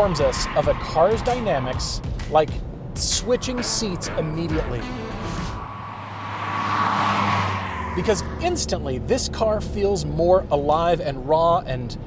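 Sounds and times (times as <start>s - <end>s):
car driving past: 4.0s - 9.8s.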